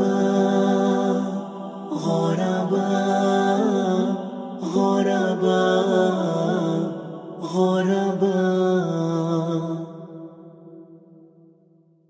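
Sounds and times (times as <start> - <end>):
voices chanting in harmony: 0.0 - 11.1.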